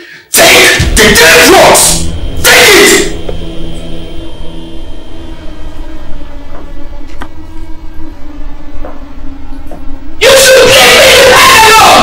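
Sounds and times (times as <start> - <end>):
low droning film score: 0.7 - 12.0.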